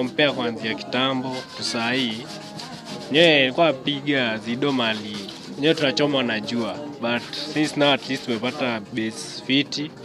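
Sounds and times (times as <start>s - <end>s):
man talking: 0.0s - 2.3s, 3.1s - 10.0s.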